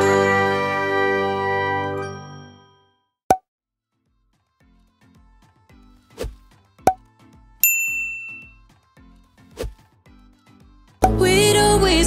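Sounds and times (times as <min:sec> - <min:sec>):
quiet music with soft beat: 0:04.1 - 0:11.4.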